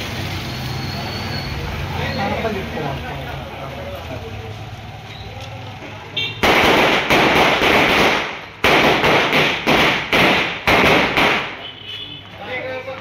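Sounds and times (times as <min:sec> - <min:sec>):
firecrackers banging: 0:05.8 - 0:13.0.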